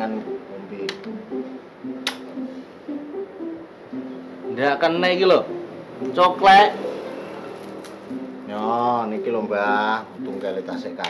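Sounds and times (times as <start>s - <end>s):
plucked string melody: 0.0s - 11.0s
sharp clicks: 2.0s - 2.3s.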